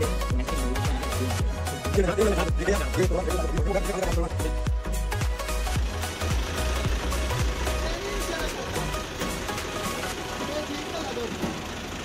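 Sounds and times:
music with heavy bass beat: 0.0s - 10.3s
tractor diesel engine idling: 0.0s - 12.0s.

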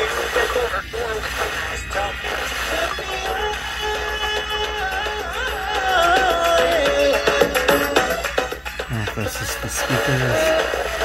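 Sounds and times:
distorted music from radio speaker: 0.0s - 11.0s.

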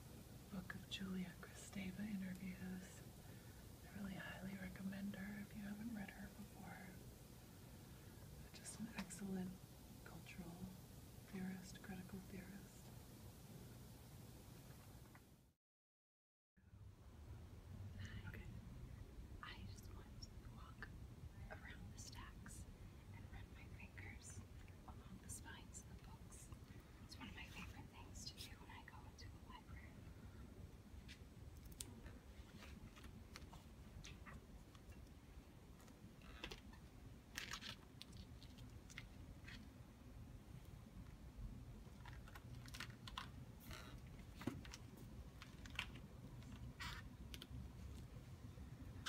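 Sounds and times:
steady low hum: 0.0s - 15.2s, 16.6s - 49.0s
woman whispering: 0.5s - 3.2s, 3.8s - 7.1s, 8.4s - 12.9s, 18.0s - 18.6s, 19.4s - 30.1s.

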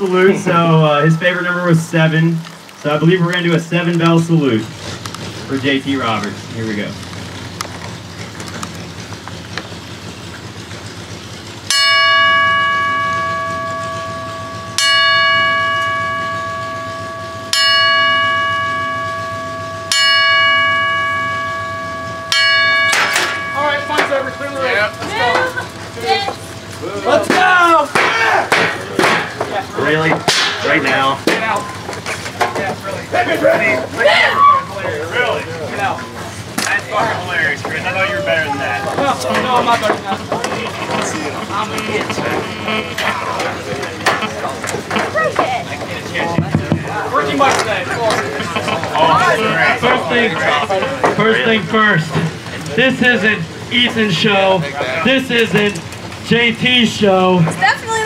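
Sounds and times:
mix of voices: 0.0s - 58.0s
bell strikes ringing: 11.7s - 33.9s, 35.1s - 58.0s.

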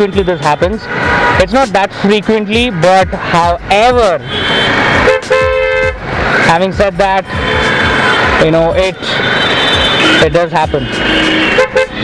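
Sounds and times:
road and wind noise: 0.0s - 12.0s
vehicle horn honking: 4.2s - 6.0s, 7.2s - 12.0s.

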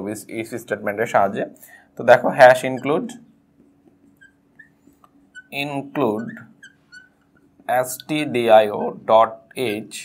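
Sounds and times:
faint steady hum: 0.0s - 10.0s
marker squeaking on glass: 2.2s - 9.0s.

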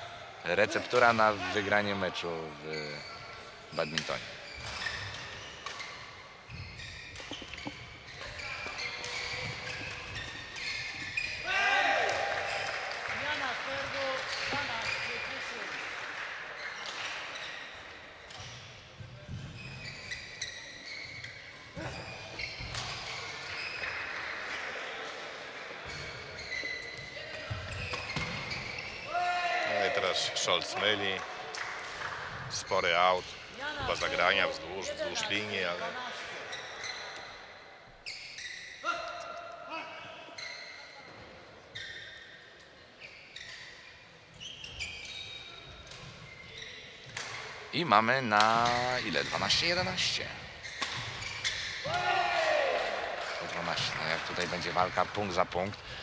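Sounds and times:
shoes squeaking on court floor: 0.9s - 11.6s, 12.2s - 15.7s, 16.6s - 24.2s, 25.8s - 31.7s, 32.3s - 52.0s.

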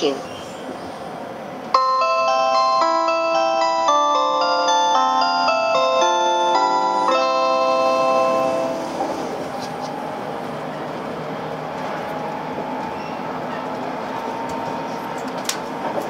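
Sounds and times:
electronic bell-like chime melody: 1.8s - 9.5s
electric train running: 1.8s - 16.0s.

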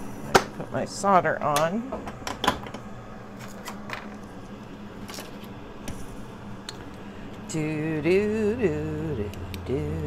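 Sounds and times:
faint low hum: 2.9s - 10.0s.

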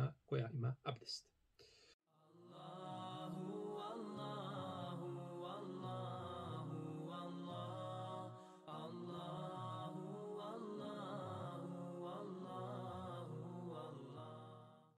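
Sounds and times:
chanted vocal music: 2.2s - 15.0s.

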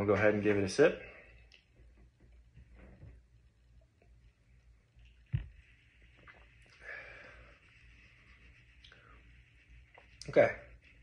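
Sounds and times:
mouth thump: 5.3s - 5.6s
breathy exhale: 6.8s - 7.5s.

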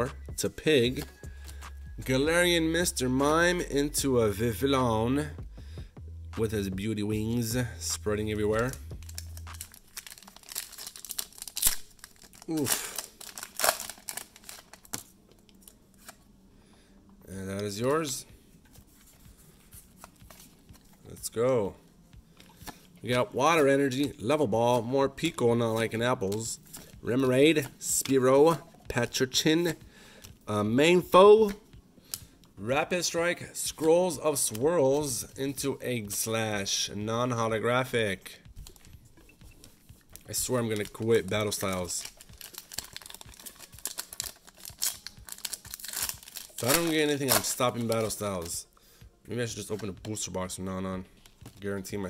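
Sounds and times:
foil wrapper rustling: 8.5s - 16.2s, 40.1s - 48.6s.

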